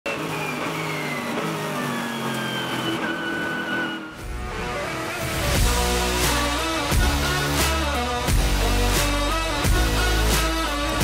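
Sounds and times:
race car engine running: 0.0s - 11.0s
background music: 0.2s - 11.0s.

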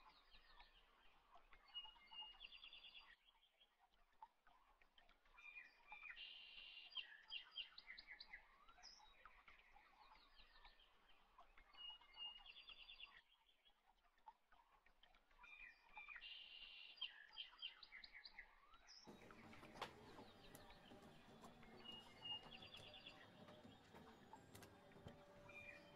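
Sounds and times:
faint birdsong chirping trills: 0.0s - 3.8s, 5.1s - 14.0s, 14.9s - 25.9s.

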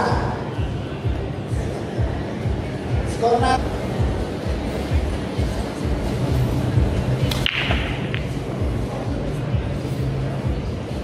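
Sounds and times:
cue striking cue ball: 7.2s - 8.4s
pool balls clicking: 7.2s - 8.4s.

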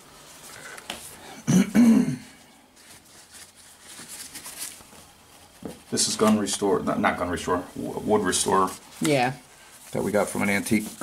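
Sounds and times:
person clearing throat: 1.4s - 2.4s.

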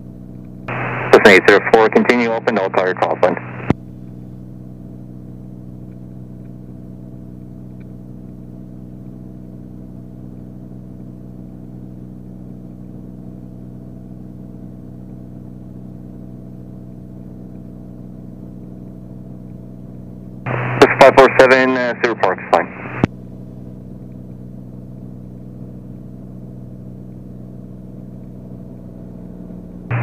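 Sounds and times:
airplane engine and propeller drone: 0.0s - 30.0s.

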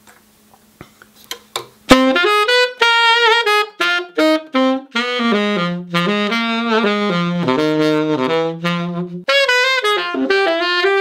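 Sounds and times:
tenor saxophone jazz phrase: 1.9s - 11.0s.

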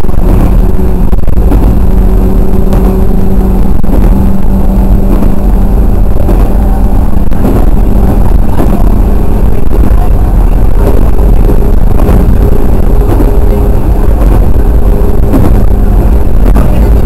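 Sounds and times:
electric train rumbling: 0.0s - 17.0s
faint steady hum: 0.0s - 17.0s.

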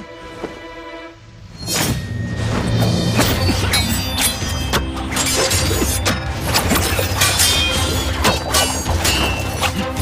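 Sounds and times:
swords clashing: 3.2s - 10.0s.

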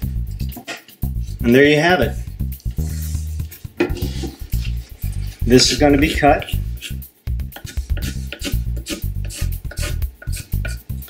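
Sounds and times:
music with plucked bass and beat: 0.0s - 11.0s
pencil scratching on wood: 7.6s - 10.8s.

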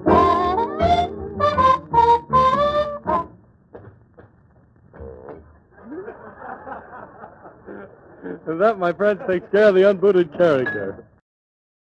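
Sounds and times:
muffled chuckling and snickering: 5.0s - 9.7s.

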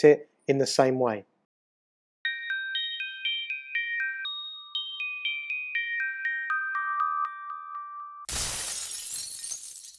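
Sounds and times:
bell-like chime notes: 2.2s - 8.3s
glass shattering crash: 8.3s - 9.9s.

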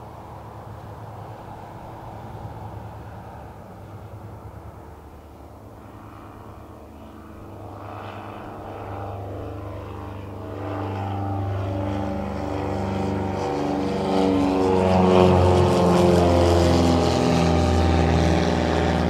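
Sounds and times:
twin propeller plane droning: 0.0s - 19.0s.

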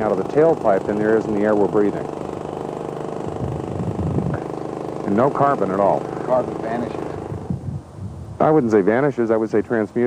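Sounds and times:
engine idling: 0.0s - 7.6s.

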